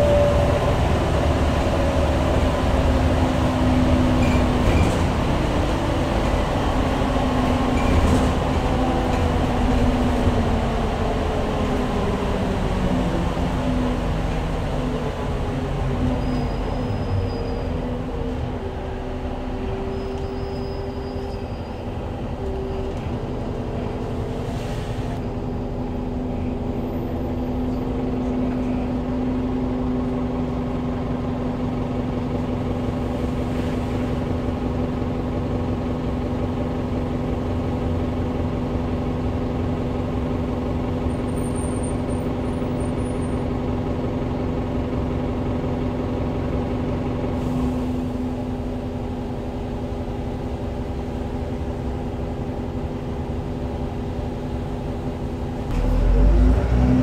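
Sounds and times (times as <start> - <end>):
bus engine hum from inside: 0.0 - 57.0.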